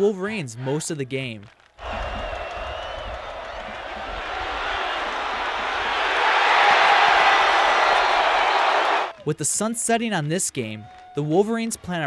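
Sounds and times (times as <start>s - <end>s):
stadium crowd cheering: 0.5s - 9.6s, 10.5s - 12.0s.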